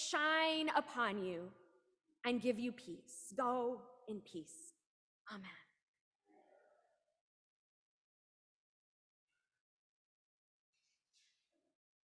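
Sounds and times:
woman speaking: 0.0s - 1.5s, 2.3s - 5.6s.

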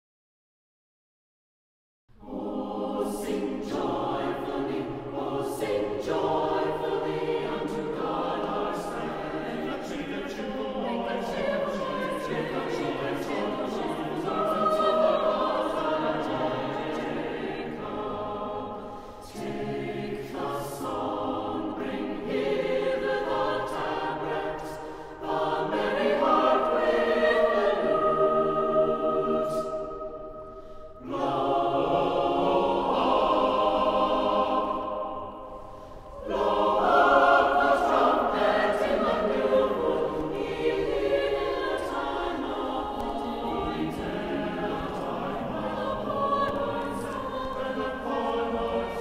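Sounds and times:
choir singing: 2.1s - 49.0s.

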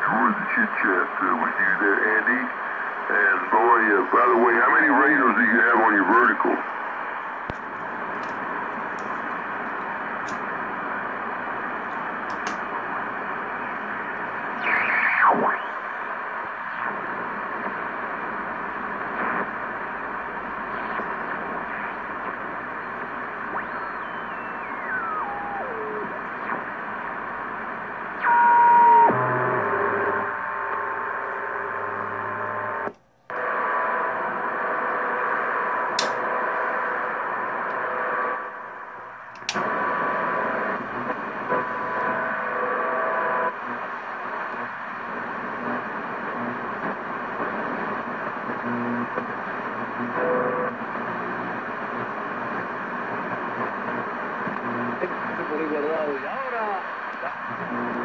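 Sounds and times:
radio static hiss: 0.0s - 58.0s
sharp clicks: 11.9s - 12.7s, 35.9s - 36.3s, 39.3s - 39.7s
radio tuning whistles: 12.8s - 31.8s.

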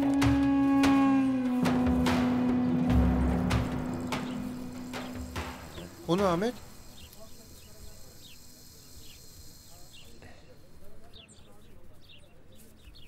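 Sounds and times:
small birds chirping: 2.0s - 13.0s.

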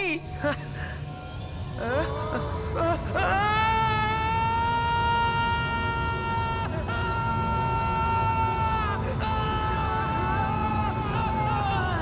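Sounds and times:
boy screaming: 3.2s - 12.0s.

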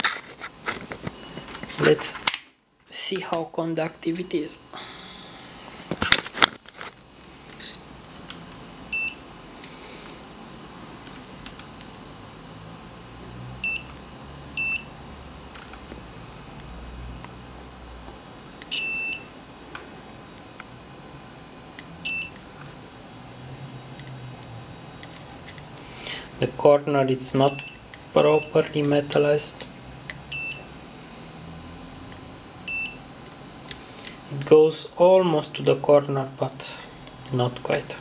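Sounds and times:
multimeter continuity beeps: 7.7s - 9.3s, 13.6s - 15.0s, 18.6s - 19.4s, 21.8s - 22.7s, 23.4s - 30.8s, 31.9s - 34.6s.

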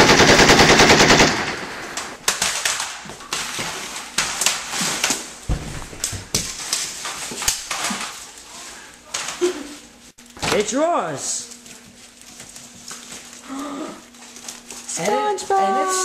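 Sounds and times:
machine-gun fire: 0.0s - 2.9s.

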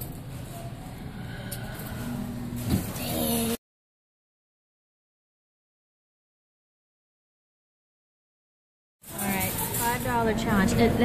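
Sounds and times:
arcade background noise: 0.0s - 3.6s, 9.0s - 11.0s
low hum of claw machines: 0.0s - 3.6s, 9.0s - 11.0s.

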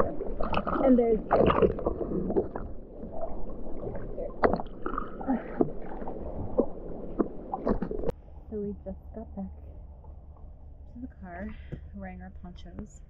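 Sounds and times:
waves splashing over camera: 0.0s - 8.1s
sea water sloshing and gurgling: 0.0s - 8.6s.

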